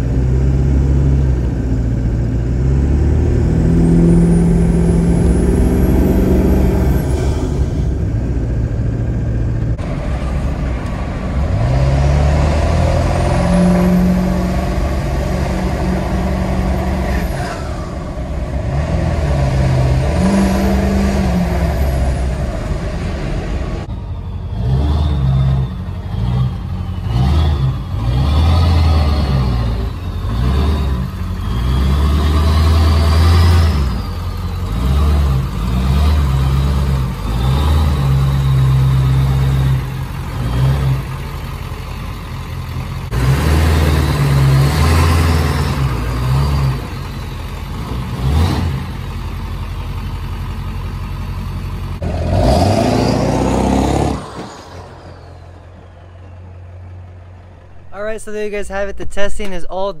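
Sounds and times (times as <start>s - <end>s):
diesel truck engine revving: 0.0s - 58.3s.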